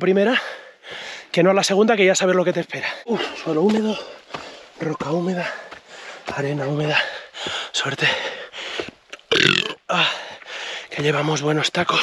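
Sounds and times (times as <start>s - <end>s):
man belching: 9.2s - 9.8s.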